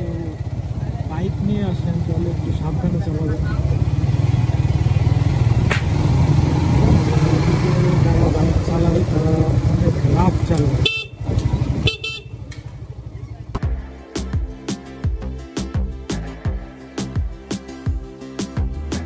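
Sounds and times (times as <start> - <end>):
motorcycle engine running: 0.0 - 13.9
horn honks: 10.8 - 12.5.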